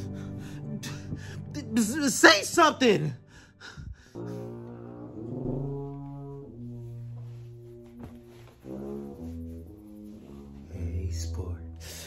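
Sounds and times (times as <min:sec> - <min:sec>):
low brass held notes: 0:04.1 - 0:12.0.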